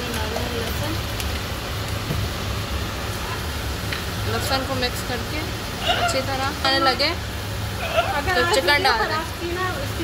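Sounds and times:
low steady rumble: 0.0s - 10.0s
onions sizzling in oil: 0.0s - 10.0s.

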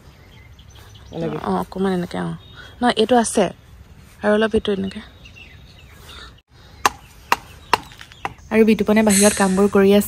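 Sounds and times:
machete chopping bamboo: 6.8s - 8.4s.

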